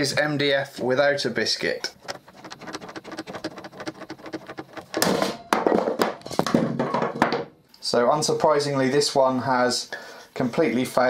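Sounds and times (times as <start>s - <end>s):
knocking and clatter: 2.0s - 7.5s.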